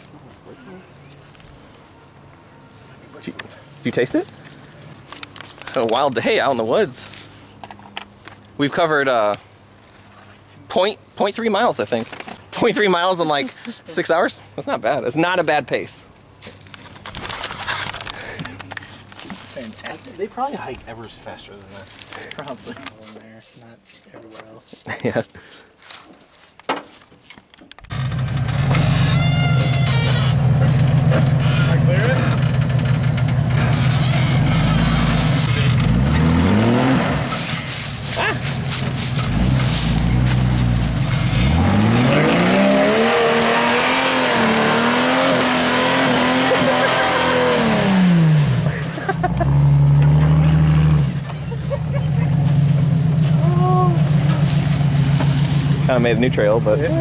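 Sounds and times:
engine working under load: 27.8s - 57.0s.

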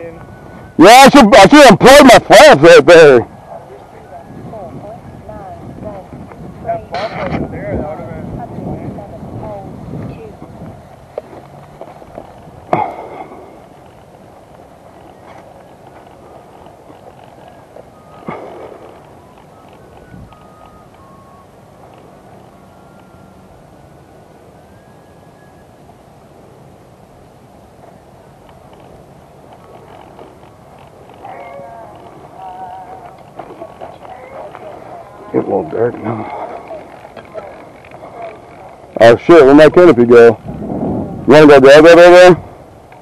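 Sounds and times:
low steady background hiss: 0.0s - 43.0s
faint indistinct voices: 29.6s - 40.4s.

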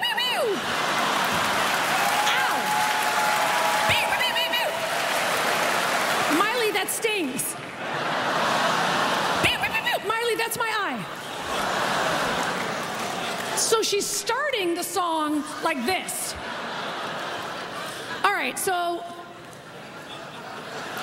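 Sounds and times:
crowd laughing: 0.1s - 14.0s, 15.1s - 21.0s
crowd clapping: 0.4s - 9.5s, 11.4s - 13.7s
crowd shouting: 0.5s - 6.3s.

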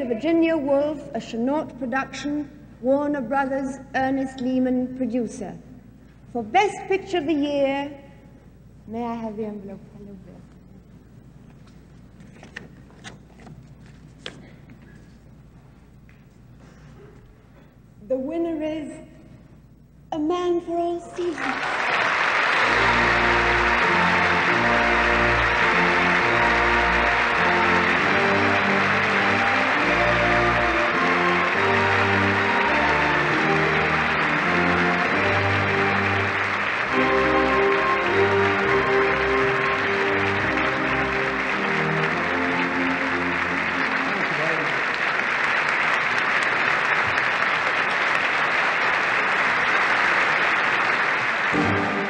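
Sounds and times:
theatre audience applauding: 21.2s - 52.0s
music playing: 22.5s - 44.8s, 51.4s - 52.0s.

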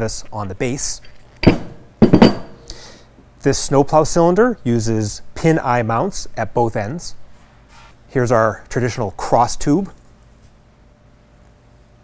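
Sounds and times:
metal cylinder clunk on table: 1.4s - 2.6s
metallic knocks with ring: 1.4s - 2.6s.

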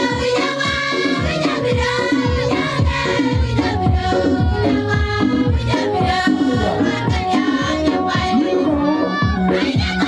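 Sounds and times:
women singing together: 0.0s - 10.0s.

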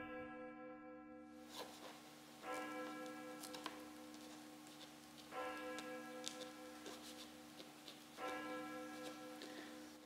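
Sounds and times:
faint bell ringing: 2.4s - 4.6s, 5.3s - 7.5s, 8.1s - 10.0s.

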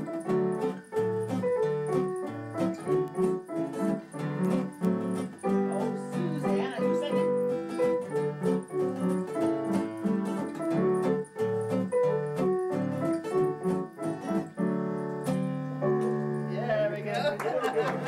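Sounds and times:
acoustic guitar playing: 0.0s - 18.0s
piano playing: 0.0s - 18.0s.

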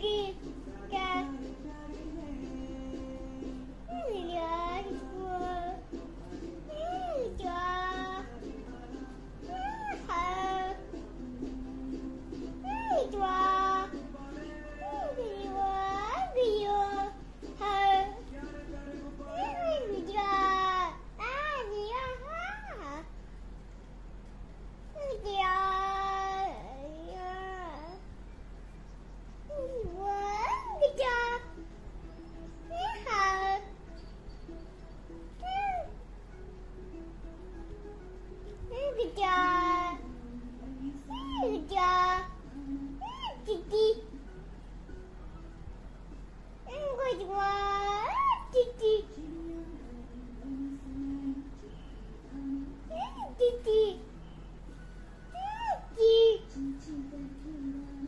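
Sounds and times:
boy singing: 0.0s - 23.1s, 25.0s - 28.1s, 29.5s - 31.6s, 32.7s - 33.8s, 38.6s - 44.2s, 46.7s - 54.2s, 55.4s - 58.0s.

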